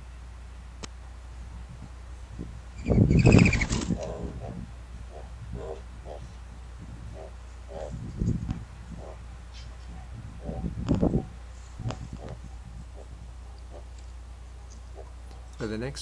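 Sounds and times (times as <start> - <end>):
dove wingbeats: 2.8 - 6.4, 7.1 - 14.1.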